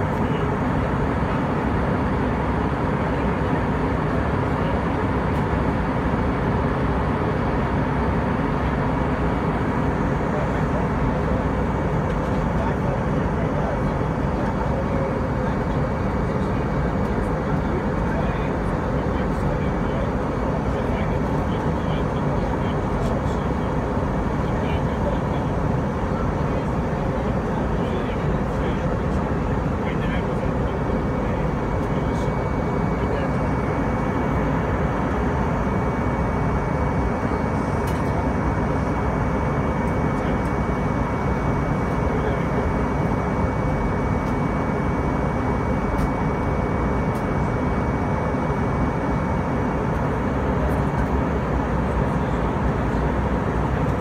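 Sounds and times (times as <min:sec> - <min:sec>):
airliner cabin engine noise: 0:00.0 - 0:54.0
thin steady whine: 0:00.0 - 0:54.0.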